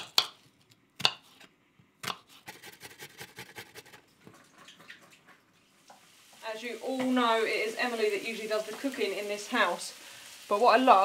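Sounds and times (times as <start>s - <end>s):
knife chopping on wooden board: 0.0s - 4.0s.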